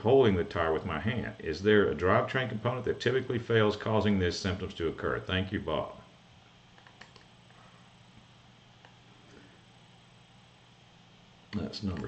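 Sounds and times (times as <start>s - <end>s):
faint low hum: 0.0s - 12.0s
faint clicks: 6.8s - 7.3s.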